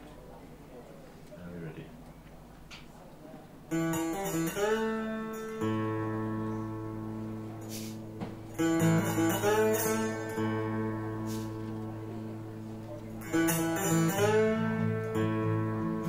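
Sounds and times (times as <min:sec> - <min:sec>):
acoustic guitar: 0:03.7 - 0:16.0
mountain dulcimer: 0:03.7 - 0:16.0.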